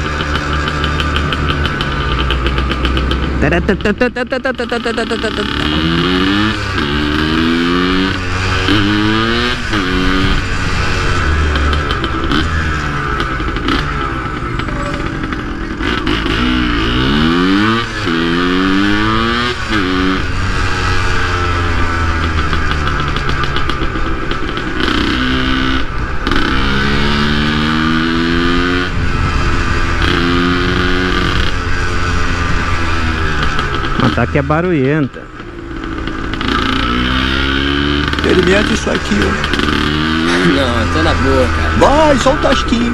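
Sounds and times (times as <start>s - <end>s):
two-stroke motorcycle engine accelerating: 0.0s - 42.9s.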